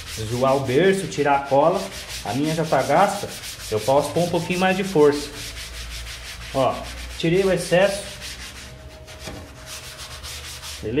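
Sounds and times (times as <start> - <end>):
sponge scrubbing wet surface: 0.0 - 11.0.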